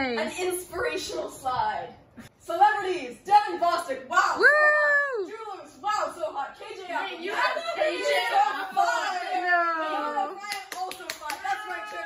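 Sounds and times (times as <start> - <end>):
sharp hand claps: 10.5 - 11.7
young people calling out: 11.3 - 12.0.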